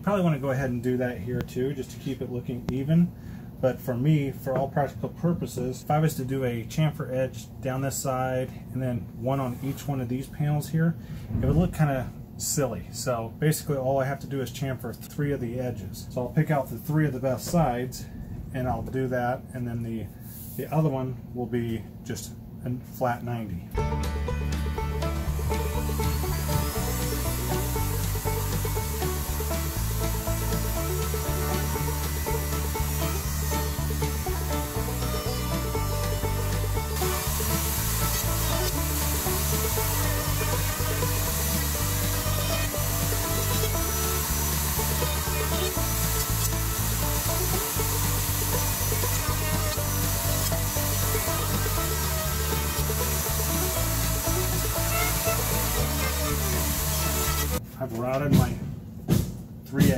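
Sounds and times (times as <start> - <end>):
background music with bass line: 23.7 - 57.6
router cutting wood: 23.8 - 57.6.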